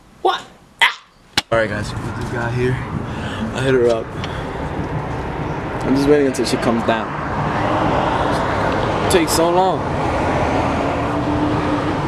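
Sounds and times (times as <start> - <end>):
street traffic noise: 0.0 - 12.0.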